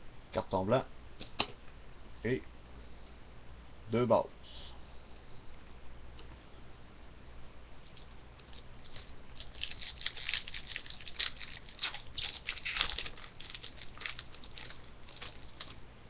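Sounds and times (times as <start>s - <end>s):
foil wrapper tearing and crinkling: 8.4s - 15.8s.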